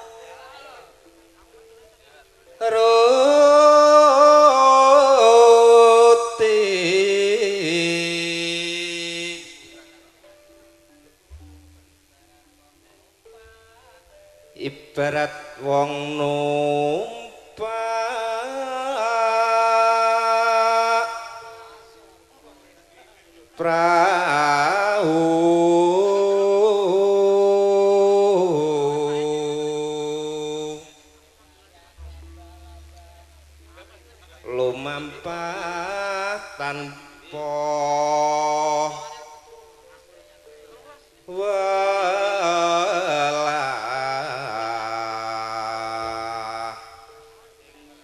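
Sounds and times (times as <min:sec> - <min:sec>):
person singing long notes: 0:00.0 - 0:01.6, 0:02.5 - 0:10.6, 0:13.2 - 0:22.6, 0:23.6 - 0:31.4, 0:32.0 - 0:48.0
singer holding long note: 0:32.0 - 0:39.9, 0:41.3 - 0:47.5.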